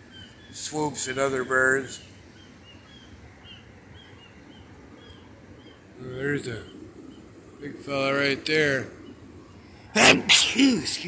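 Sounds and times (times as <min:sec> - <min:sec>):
bird chirping: 0:00.0 - 0:11.0
faint steady hiss: 0:00.0 - 0:11.0.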